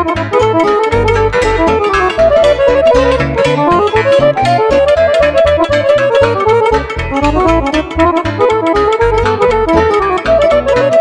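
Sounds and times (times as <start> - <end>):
accordion: 0.0 - 11.0
bass pulsing beat: 0.0 - 11.0
cimbalom hammered runs: 0.0 - 11.0
keyboard accompaniment: 0.0 - 11.0.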